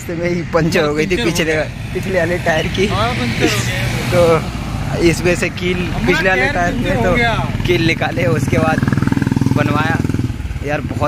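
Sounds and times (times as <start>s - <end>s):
man talking and laughing: 0.5s - 8.7s.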